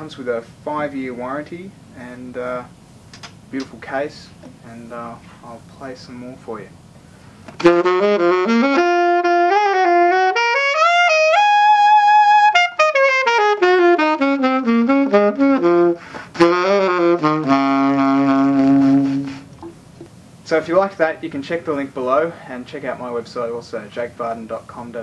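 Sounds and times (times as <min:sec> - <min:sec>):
solo saxophone jazz phrase: 0:07.6 - 0:19.6.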